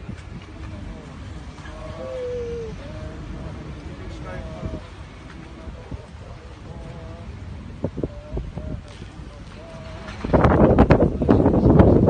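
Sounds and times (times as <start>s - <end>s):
long vocal call: 0.6s - 10.4s.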